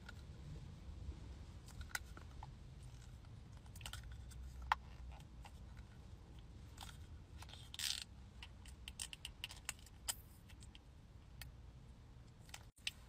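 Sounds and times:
low steady rumble: 0:00.0 - 0:13.0.

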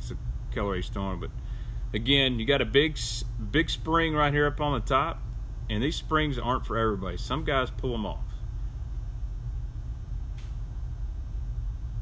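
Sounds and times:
low background hum: 0:00.0 - 0:12.0
faint click: 0:10.3 - 0:10.6.

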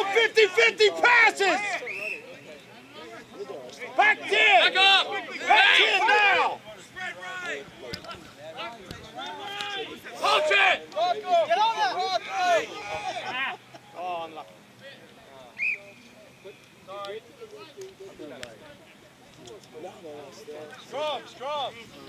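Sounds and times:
men shouting calls: 0:00.0 - 0:02.2, 0:03.8 - 0:07.8, 0:08.7 - 0:14.4.

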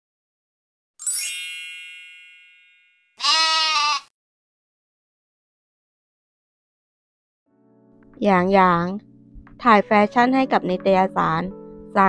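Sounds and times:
bright chime ringing: 0:01.0 - 0:03.2
sheep bleating: 0:03.2 - 0:04.1.

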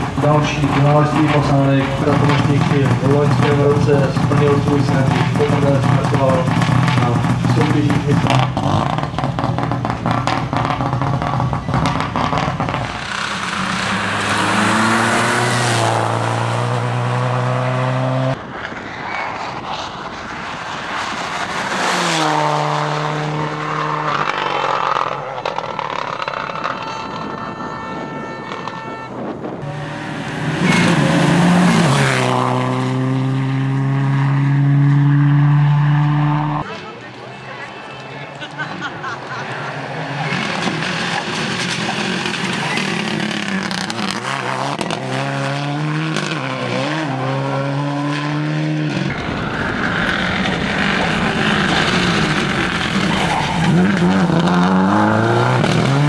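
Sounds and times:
rally car engine revving hard: 0:00.0 - 0:18.4, 0:21.8 - 0:26.6, 0:29.6 - 0:36.6, 0:39.8 - 0:56.0.

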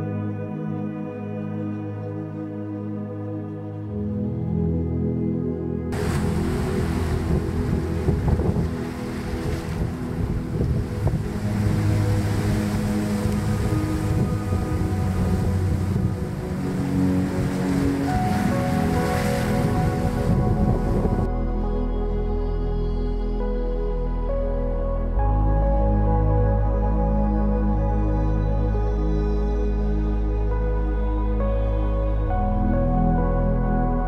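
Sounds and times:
soft ambient music: 0:00.0 - 0:34.0
ocean surf rushing: 0:06.0 - 0:21.3.

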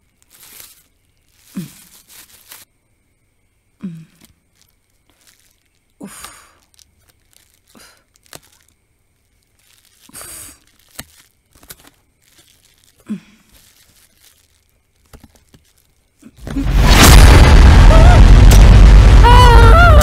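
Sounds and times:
cardboard crinkling: 0:00.0 - 0:02.7, 0:04.5 - 0:05.9, 0:06.6 - 0:16.2
packing tape tearing: 0:00.2 - 0:02.7, 0:09.6 - 0:15.9
boom sound effect: 0:16.5 - 0:20.0.

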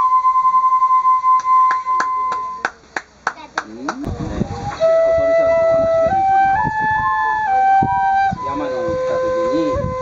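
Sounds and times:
bamboo flute note: 0:00.0 - 0:02.7, 0:04.1 - 0:10.0.

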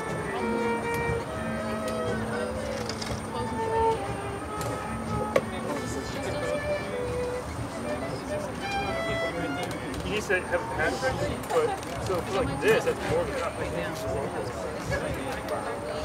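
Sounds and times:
live ensemble held notes: 0:00.0 - 0:13.3
murmur of crowd voices: 0:00.0 - 0:16.0.

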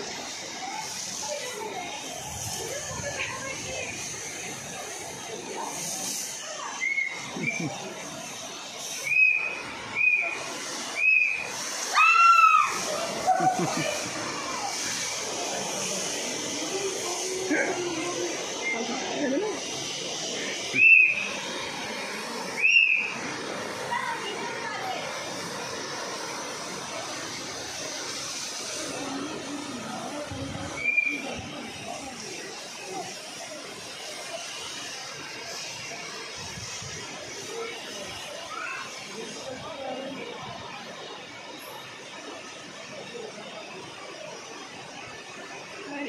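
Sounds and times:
river rushing: 0:00.0 - 0:46.0
water spray jet hissing: 0:00.0 - 0:46.0
short high whistles: 0:06.7 - 0:07.6, 0:09.0 - 0:10.4, 0:11.0 - 0:11.4, 0:20.7 - 0:21.3, 0:22.6 - 0:23.2, 0:30.8 - 0:31.3.

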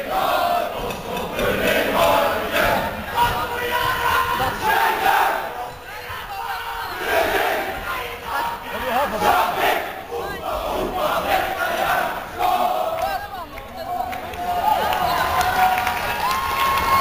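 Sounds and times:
group shouting and chanting: 0:00.0 - 0:15.8.

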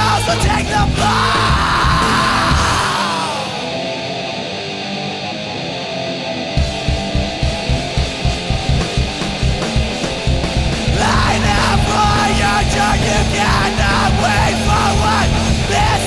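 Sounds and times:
drums and bass beat: 0:00.0 - 0:03.0, 0:06.6 - 0:16.0
person singing: 0:00.0 - 0:04.2, 0:10.9 - 0:16.0
heavy rock guitar: 0:00.0 - 0:16.0.

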